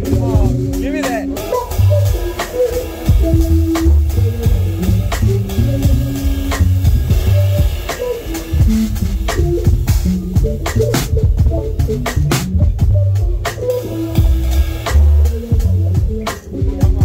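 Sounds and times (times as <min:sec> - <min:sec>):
drum and cymbal hits: 0:00.0 - 0:17.0
electric bass notes: 0:00.0 - 0:17.0.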